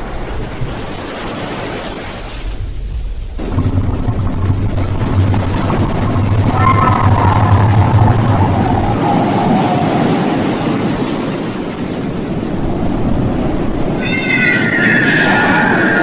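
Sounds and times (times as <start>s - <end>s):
churning water rushing: 0.0s - 16.0s
drawn-out wailing cry: 14.0s - 16.0s
higher wailing cry: 14.0s - 16.0s.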